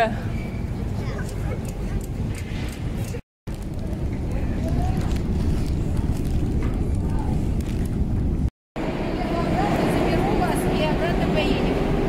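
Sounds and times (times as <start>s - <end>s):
metro station rumble: 1.8s - 12.0s
people talking: 9.1s - 11.8s.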